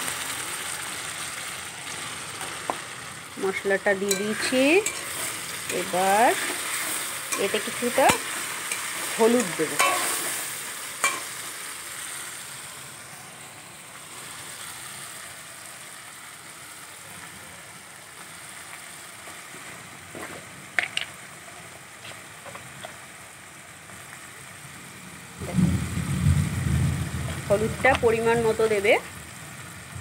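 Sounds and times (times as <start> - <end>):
food sizzling in a pan: 0.0 - 30.0
metal spatula clicking on pan: 7.3 - 10.2, 11.0 - 11.3.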